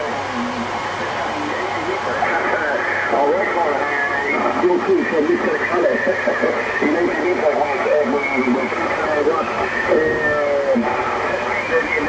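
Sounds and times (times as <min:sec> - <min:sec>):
radio band noise: 0:00.0 - 0:12.0
thin radio voice: 0:00.0 - 0:12.0.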